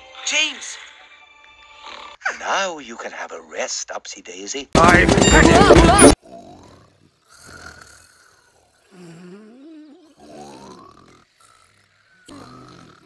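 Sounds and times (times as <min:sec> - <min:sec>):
cartoon character snoring: 0:01.8 - 0:02.2, 0:06.2 - 0:13.0.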